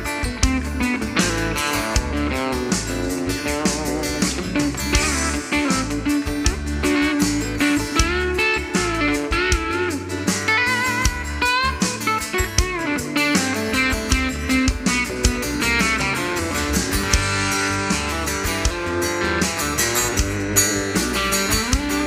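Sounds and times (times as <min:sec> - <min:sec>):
bass guitar: 0:00.0 - 0:22.0
drum beat: 0:00.0 - 0:22.0
electric guitar solo: 0:00.0 - 0:22.0.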